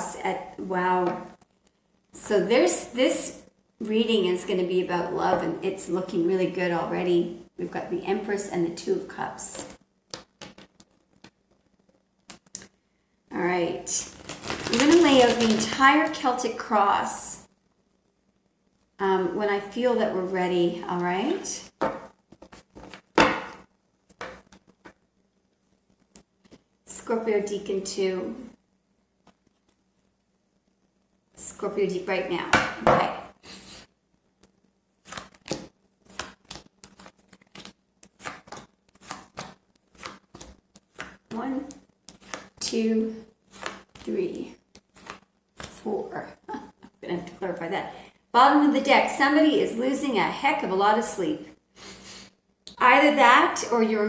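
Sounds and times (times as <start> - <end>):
cards being shuffled: 10.1 - 12.7, 13.9 - 16.4, 34.4 - 42.7, 43.4 - 45.8.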